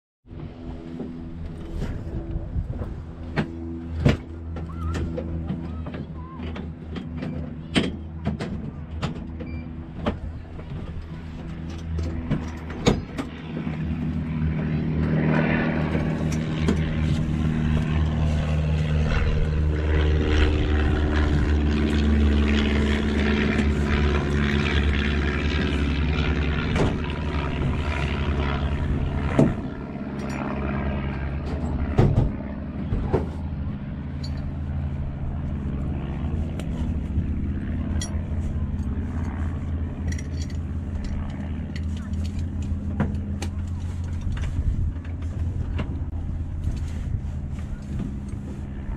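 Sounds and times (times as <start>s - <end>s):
radial aircraft engine idling: 0.3s - 48.9s.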